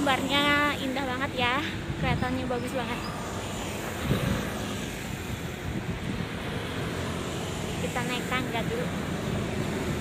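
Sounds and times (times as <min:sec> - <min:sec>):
cars passing: 0:00.0 - 0:10.0
wind noise on microphone: 0:01.6 - 0:07.1.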